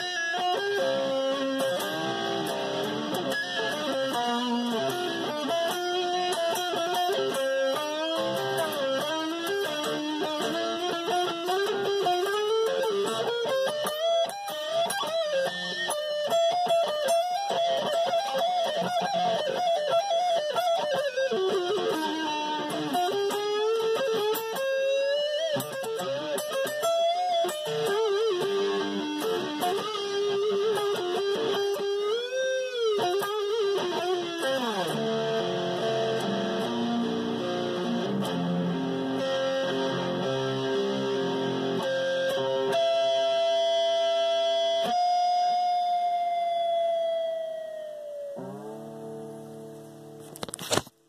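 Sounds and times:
solo electric guitar: 0.0s - 50.9s.

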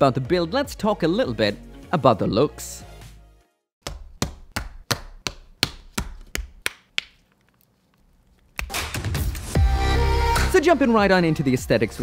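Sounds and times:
background music: 0.0s - 3.7s, 8.7s - 12.0s.

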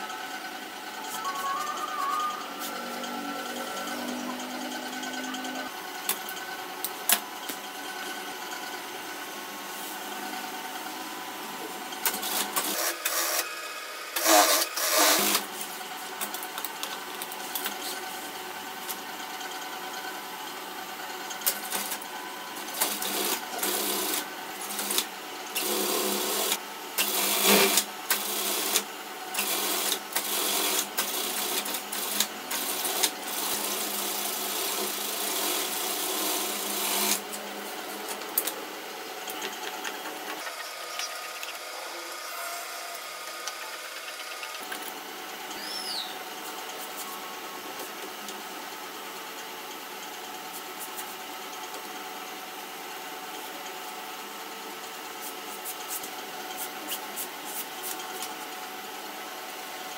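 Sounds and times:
steady hum: 0.0s - 11.9s
sewing machine stitching: 14.2s - 15.5s, 22.7s - 37.2s.

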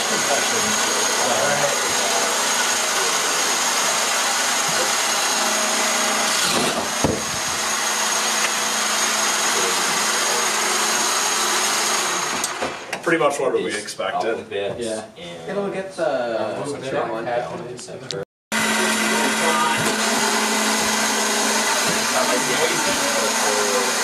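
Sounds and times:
electric motors whining: 0.0s - 13.0s, 18.5s - 24.0s
sharp knock: 6.5s - 7.4s.

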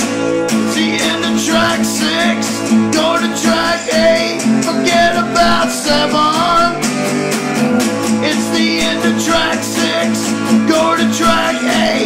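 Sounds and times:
strummed guitar music: 0.0s - 12.0s.

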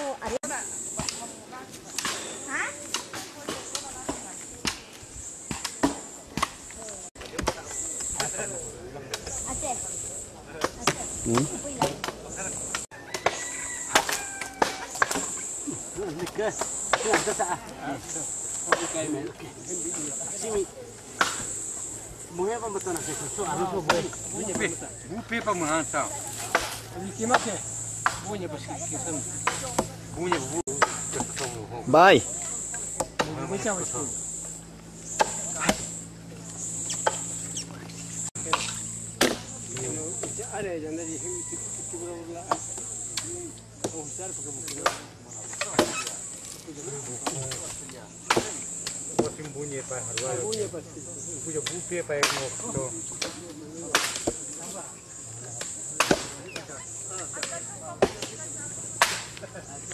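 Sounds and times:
people talking: 0.0s - 4.9s, 6.2s - 12.8s, 14.6s - 34.2s, 35.2s - 37.0s, 37.6s - 59.9s
steady high-pitched whine: 0.0s - 59.9s
machetes chopping bamboo: 1.9s - 8.3s, 10.6s - 15.6s, 16.2s - 17.5s, 21.2s - 21.6s, 26.3s - 28.4s, 29.4s - 31.5s, 32.9s - 33.5s, 35.1s - 36.0s, 38.4s - 40.4s, 44.7s - 46.2s, 47.2s - 50.7s, 51.6s - 54.6s, 55.6s - 56.4s, 57.3s - 59.4s.

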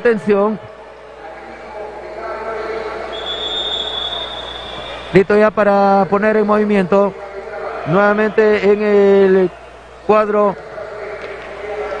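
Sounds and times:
arena background noise: 0.0s - 12.0s
high-pitched whistle blast: 3.1s - 5.2s.

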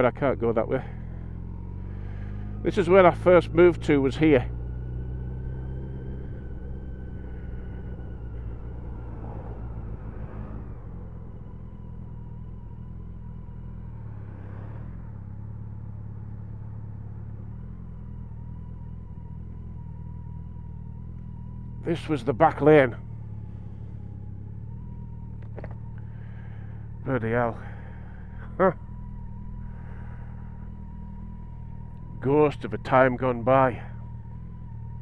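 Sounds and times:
motorcycle engine running: 0.0s - 35.0s.

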